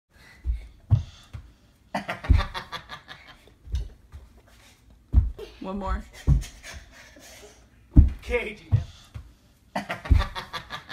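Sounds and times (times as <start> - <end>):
child jumping thumps: 0.3 - 1.6, 2.2 - 2.8, 3.5 - 4.4, 5.0 - 7.0, 7.9 - 9.3, 10.0 - 10.5.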